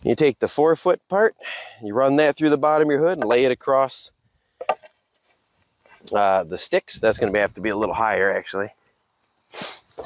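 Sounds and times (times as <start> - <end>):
wooden knocks: 4.6 - 5.0.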